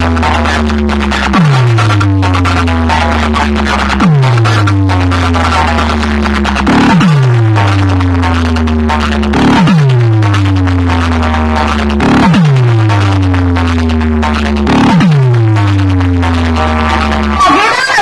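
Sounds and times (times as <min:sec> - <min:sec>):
deep sliding bass note: 0:00.0 - 0:17.4
loud electronic dance track: 0:00.0 - 0:18.0.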